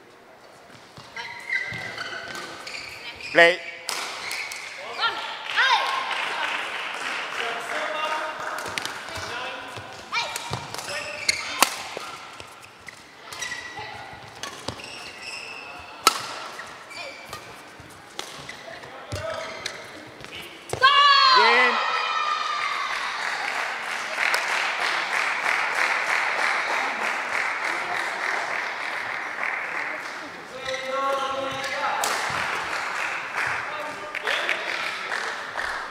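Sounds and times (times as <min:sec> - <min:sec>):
applause: 0:05.4 - 0:08.5, 0:22.7 - 0:30.3, 0:32.1 - 0:35.9
racket striking shuttlecock: 0:09.9 - 0:15.0, 0:16.0 - 0:19.8
players shouting loudly: 0:20.8 - 0:23.2.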